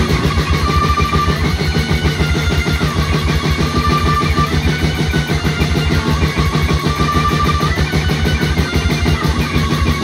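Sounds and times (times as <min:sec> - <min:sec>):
distorted electric guitar: 0:00.0 - 0:10.0
fast drumming: 0:00.0 - 0:10.0.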